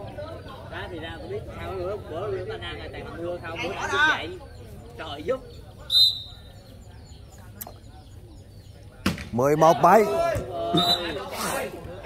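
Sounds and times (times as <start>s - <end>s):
low background voices: 0.0s - 12.0s
referee's whistle blast: 5.9s - 6.4s, 10.8s - 11.3s.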